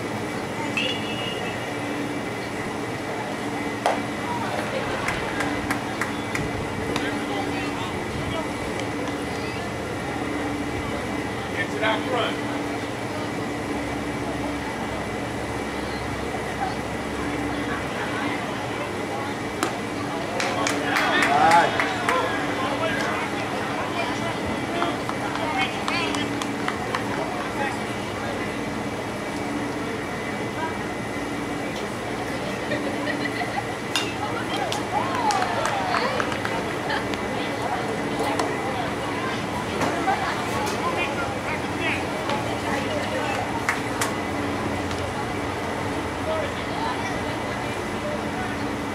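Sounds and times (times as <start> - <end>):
indistinct voices: 0.0 - 48.9
steady background hum: 0.0 - 48.9.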